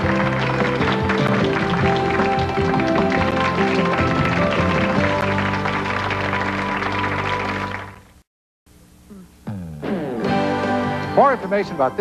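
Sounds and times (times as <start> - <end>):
instrumental bumper music: 9.5 - 12.0.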